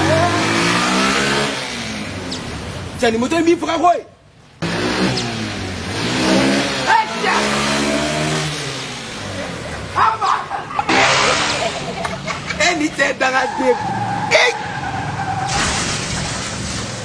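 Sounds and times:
motorcycle engine revving past: 0:10.9 - 0:11.9.

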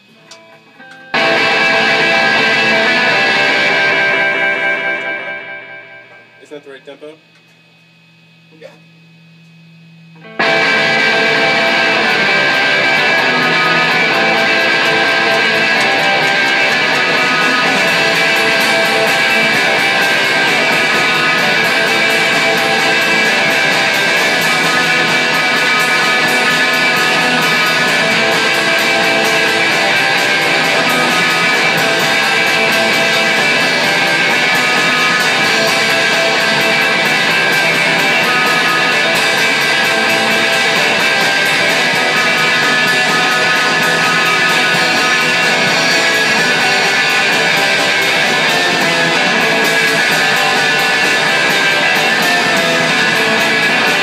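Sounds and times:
punk rock band playing: 0:00.0 - 0:06.2, 0:10.2 - 0:54.0.

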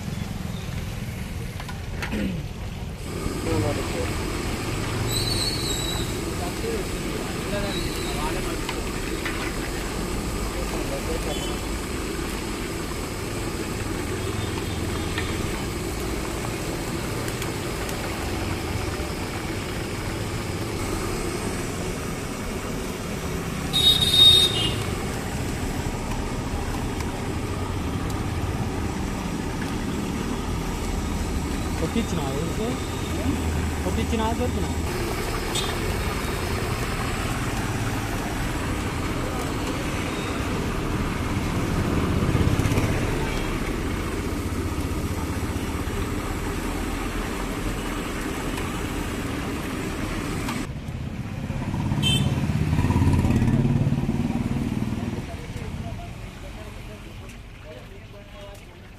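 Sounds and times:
gas burner noise: 0:00.0 - 0:58.9
street background noise: 0:00.0 - 0:58.9
oil sizzling: 0:03.0 - 0:50.7.

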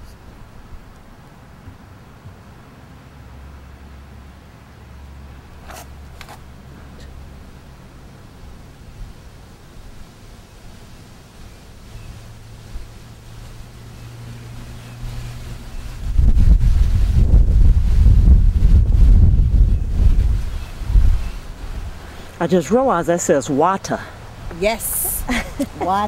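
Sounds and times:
wind buffeting microphone: 0:14.4 - 0:23.0.

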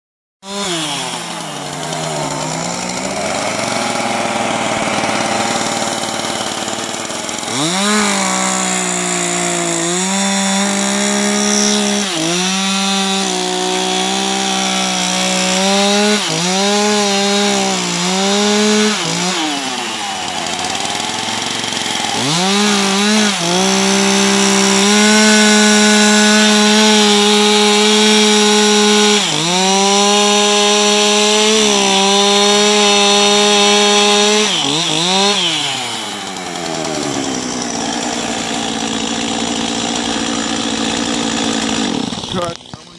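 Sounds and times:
chainsaw cutting wood: 0:00.4 - 0:42.9.

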